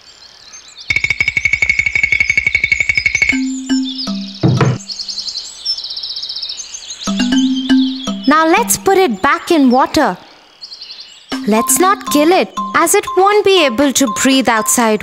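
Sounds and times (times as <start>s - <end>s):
bird chirps: 0.9s - 9.7s, 10.3s - 15.0s
short musical notes: 3.4s - 5.0s, 7.1s - 8.9s, 11.4s - 14.6s.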